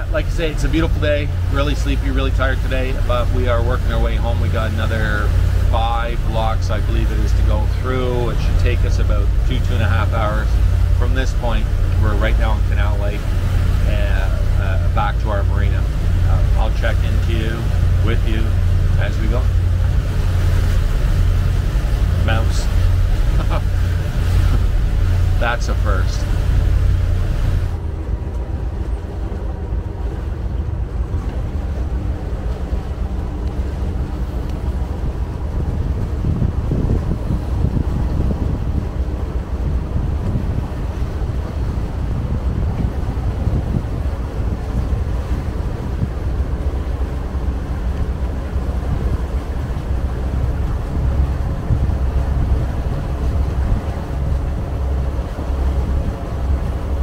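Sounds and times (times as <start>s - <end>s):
boat engines rumbling: 0.0s - 57.0s
water washing along hull: 0.0s - 57.0s
wind buffeting microphone: 0.0s - 57.0s.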